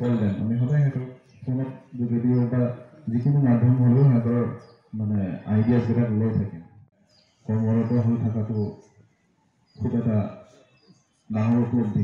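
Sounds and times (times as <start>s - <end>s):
man speaking into a microphone: 0.0s - 6.7s, 7.5s - 8.8s, 9.8s - 10.6s, 11.3s - 12.0s.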